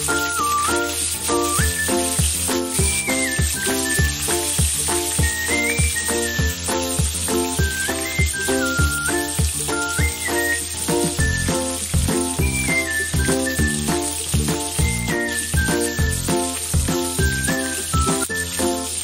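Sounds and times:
background music with steady beat: 0.0 - 19.0
fish sizzling in oil: 0.0 - 19.0.

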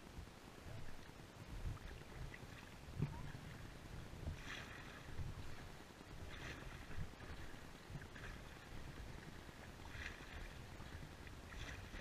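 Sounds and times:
wind rumble on microphone: 0.0 - 12.0
kayak paddle splashes: 0.7 - 12.0.

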